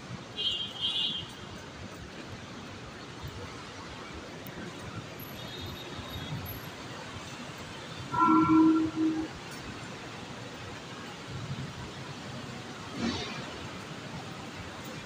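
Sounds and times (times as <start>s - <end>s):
city traffic hum: 0.0s - 15.0s
loud steady-pitched tone: 8.1s - 9.4s.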